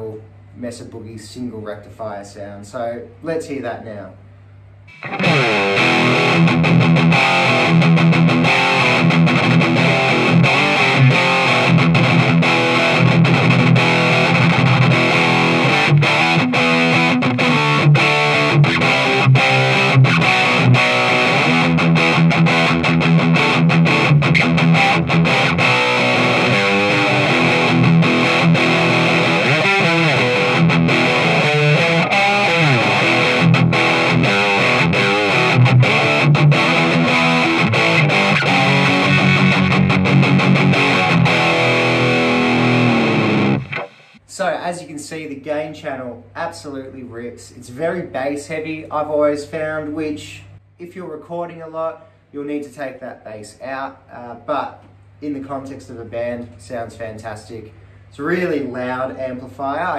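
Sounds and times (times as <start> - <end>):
distorted metal guitar riffing: 4.9 - 44.2.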